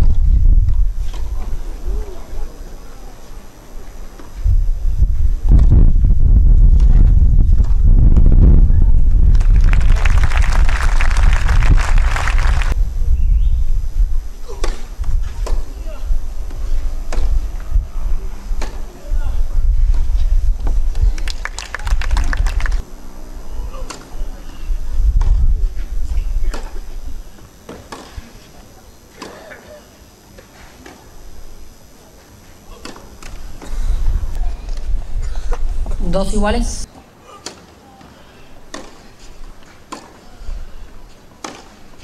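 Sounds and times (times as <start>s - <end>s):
heavy low rumble: 0.0s - 2.0s, 4.4s - 14.4s
crowd applauding and cheering: 9.3s - 12.8s, 21.2s - 22.8s
short burst of claps: 9.3s - 12.8s, 21.1s - 22.8s
racket striking ball: 38.7s - 39.1s, 39.9s - 40.2s, 41.4s - 41.8s.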